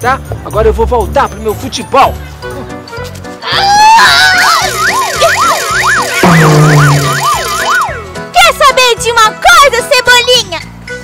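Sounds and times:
background music: 0.0 - 11.0
cartoon whistle swooping: 4.2 - 8.0
low droning tone: 6.2 - 7.3.

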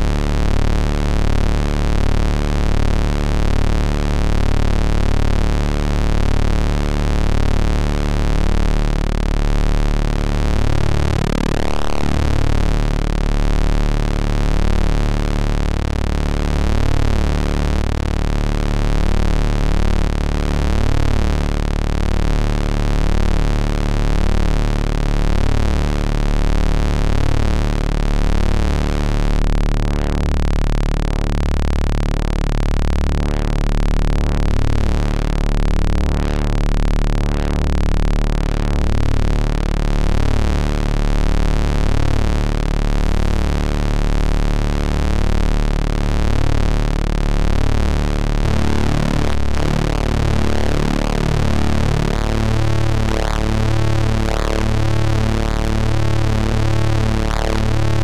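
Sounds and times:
low synthesizer drone: 0.0 - 58.0.

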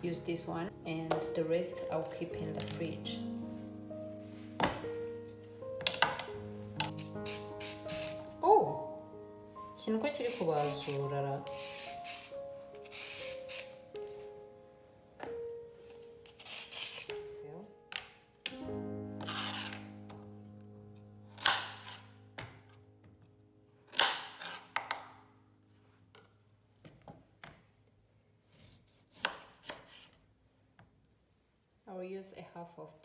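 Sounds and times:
soft background music: 0.0 - 29.1
knife cutting on cutting board: 6.8 - 8.2, 10.2 - 13.8, 16.2 - 17.2, 19.2 - 19.8, 28.5 - 30.2
peeler scraping carrot: 6.9 - 8.3, 10.2 - 13.8, 16.2 - 17.2, 19.2 - 19.8.

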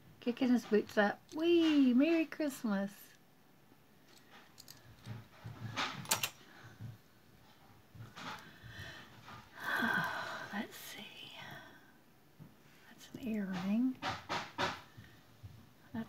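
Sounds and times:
jewelry clinking and rattling: 0.4 - 2.3, 4.0 - 6.4.

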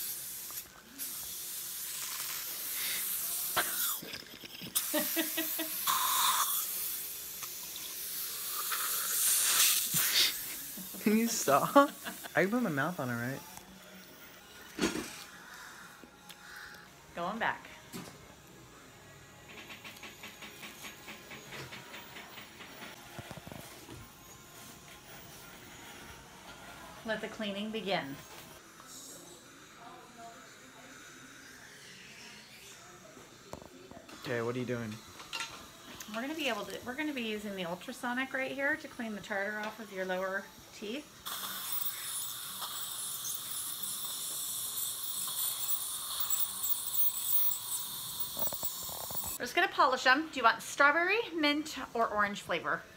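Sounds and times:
dental chair motor hiss: 0.0 - 52.7.

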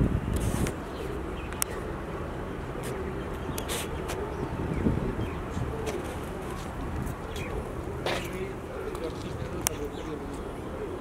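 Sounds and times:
pigeons cooing: 0.4 - 11.0.

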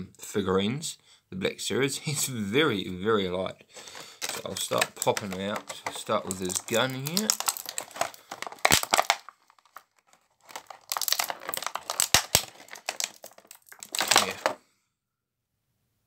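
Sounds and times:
plastic blister pack crinkling: 3.8 - 14.6.

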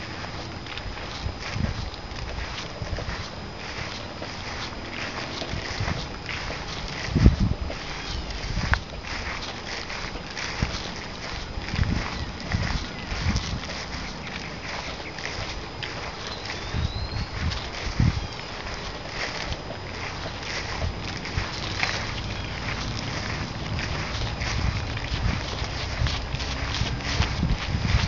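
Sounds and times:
wind and handling bumps on microphone: 0.0 - 28.0.

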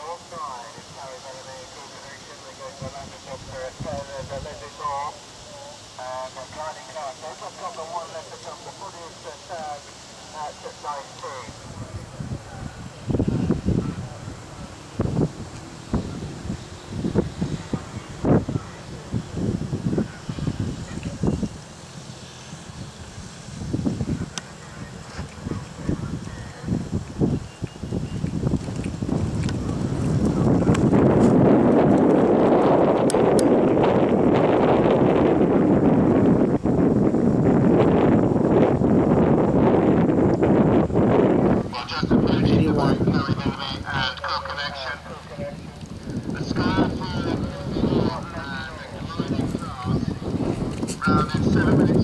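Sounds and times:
wind buffeting microphone: 2.5 - 7.8, 11.2 - 52.0.

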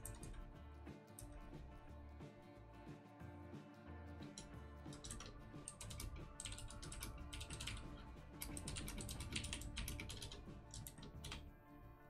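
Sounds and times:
faint background music: 0.0 - 12.0
keyboard key clicks: 4.9 - 11.4.

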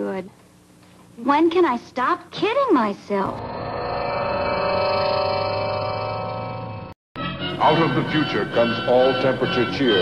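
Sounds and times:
electronic materialisation chord: 3.4 - 10.0.

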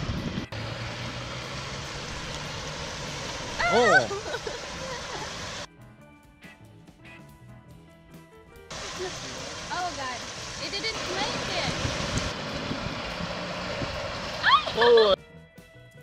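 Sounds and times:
water rushing over spillway: 0.5 - 5.7, 8.7 - 15.2
loud exclamation: 3.6 - 4.2
people's voices: 3.6 - 5.4.

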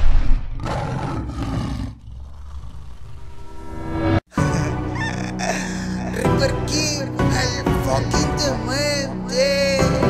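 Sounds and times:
lion roar: 0.2 - 3.4.

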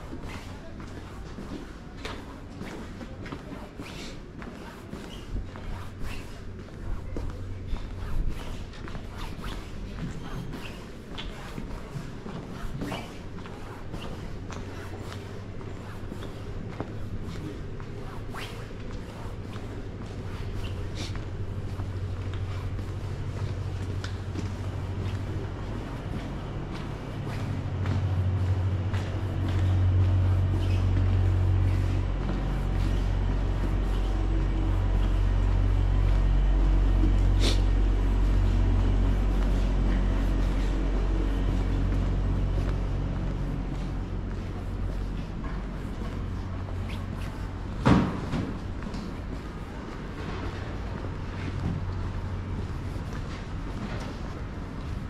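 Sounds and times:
vehicle engine rumble: 4.2 - 55.0.

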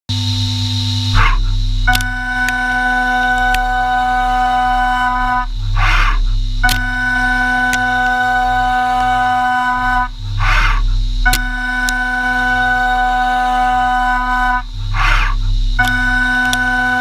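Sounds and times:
milling spindle cutting whine: 0.1 - 17.0.

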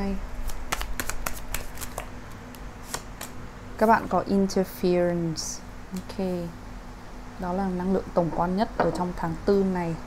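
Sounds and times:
cards being shuffled: 0.4 - 2.1, 2.8 - 3.4.

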